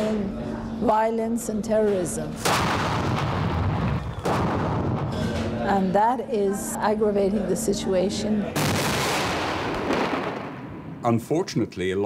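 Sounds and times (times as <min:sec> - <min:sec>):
mortar blast rumbling: 0:02.4 - 0:05.3, 0:08.6 - 0:11.0.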